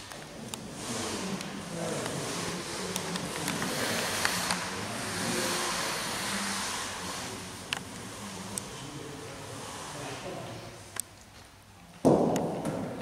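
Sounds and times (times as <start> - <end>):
faint murmuring voices: 0.0 - 11.0
steady rushing noise: 0.0 - 11.0.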